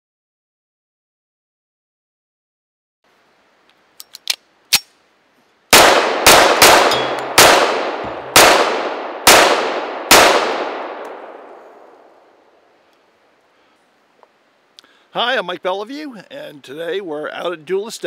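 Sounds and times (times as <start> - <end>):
pistol handling clicks: 4.0 - 4.9
pistol shots echoing: 5.7 - 11.6.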